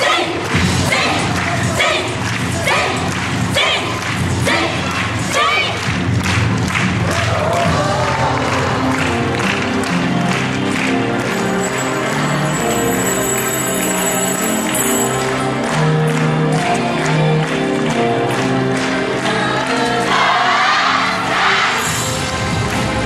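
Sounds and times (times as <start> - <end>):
rhythmic group shouts: 0.0 - 6.1.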